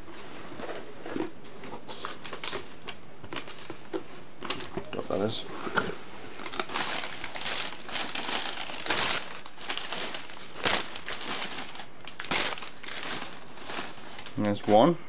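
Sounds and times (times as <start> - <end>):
newspaper rustling and crinkling: 0.0 - 15.0.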